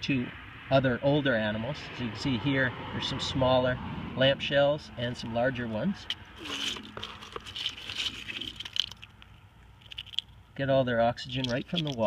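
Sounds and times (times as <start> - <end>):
shells clicking and rattling: 6.0 - 10.4, 11.4 - 12.0.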